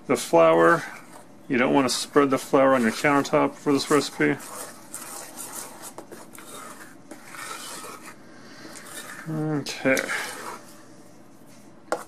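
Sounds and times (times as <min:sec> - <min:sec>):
spoon scraping a metal saucepan: 0:02.8 - 0:09.3, 0:09.9 - 0:10.7.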